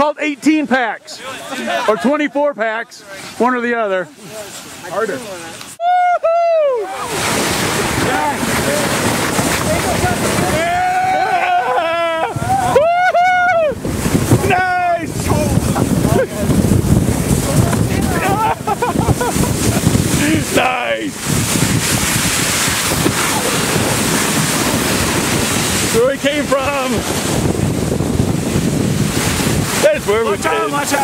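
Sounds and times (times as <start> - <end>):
snow tubes sliding over snow: 0.4 - 31.0
people yelling: 1.1 - 2.3, 5.8 - 16.5, 17.6 - 18.8, 29.8 - 31.0
wind on microphone: 6.7 - 31.0.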